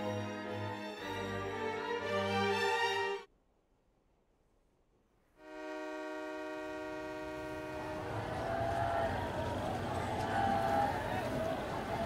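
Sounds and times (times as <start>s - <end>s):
train whistle blast: 5.4s - 9.3s.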